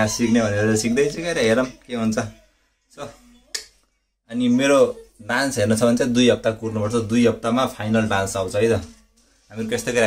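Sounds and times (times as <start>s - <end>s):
man's voice: 0.0s - 3.2s, 4.3s - 10.0s.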